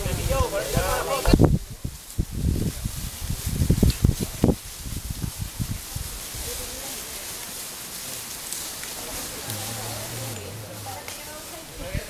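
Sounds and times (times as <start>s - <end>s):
footsteps crunching through leaves: 0.4s - 12.0s.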